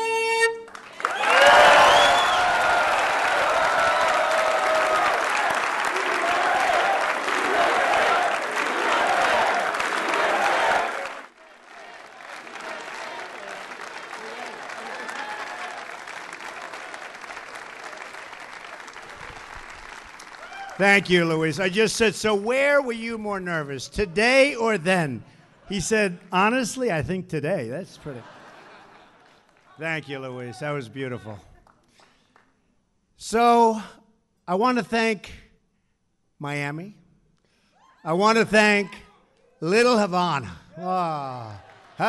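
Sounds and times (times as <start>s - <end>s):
audience clapping: 0.5s - 21.9s, 28.7s - 30.6s, 31.2s - 32.7s, 41.0s - 42.0s.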